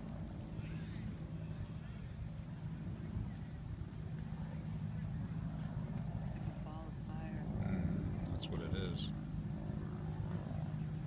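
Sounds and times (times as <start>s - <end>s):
steady low rumble: 0.0s - 11.0s
faint voices talking: 0.1s - 11.0s.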